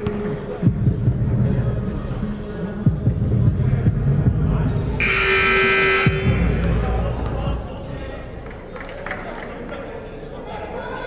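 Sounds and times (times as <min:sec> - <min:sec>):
scoreboard horn blast: 0:05.0 - 0:06.7.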